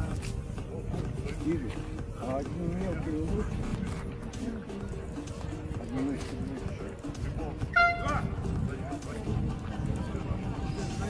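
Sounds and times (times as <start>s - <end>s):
people talking: 1.0s - 11.0s.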